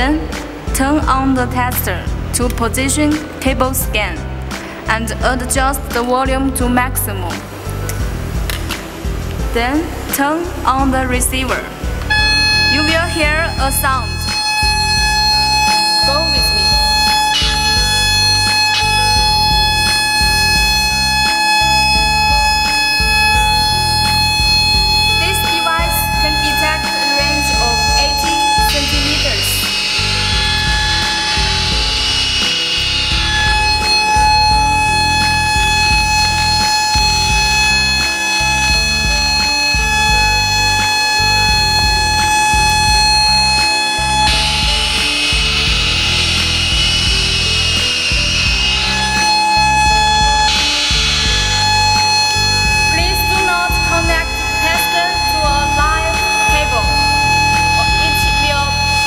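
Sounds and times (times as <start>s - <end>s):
background music: 0.0s - 59.0s
hissing static: 7.1s - 59.0s
high-pitched probe tone: 9.6s - 59.0s.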